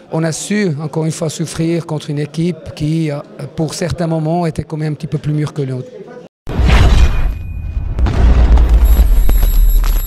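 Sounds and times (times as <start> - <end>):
deep booming rumble: 6.5 - 9.6
high ringing tones: 7.2 - 8.0.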